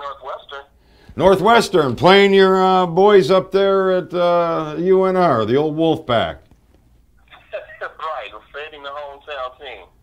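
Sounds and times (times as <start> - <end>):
man talking over telephone: 0.0 - 6.5, 7.3 - 10.0.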